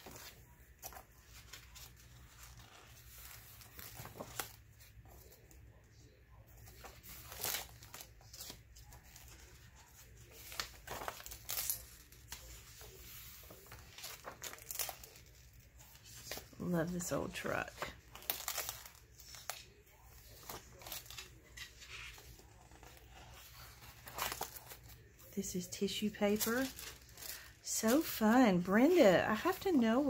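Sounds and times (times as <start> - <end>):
paper pages rustling: 0.0 - 5.7, 6.4 - 30.0
paper crackles: 0.0 - 5.8, 6.4 - 30.0.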